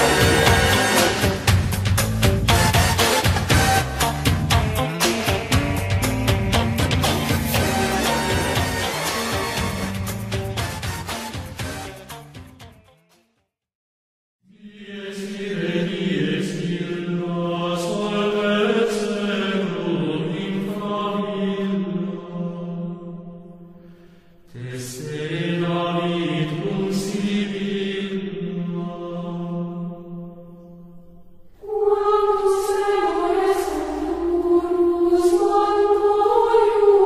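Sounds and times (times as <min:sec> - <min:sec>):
chanted singing: 0:00.0 - 0:01.5, 0:14.5 - 0:23.6, 0:24.5 - 0:37.0.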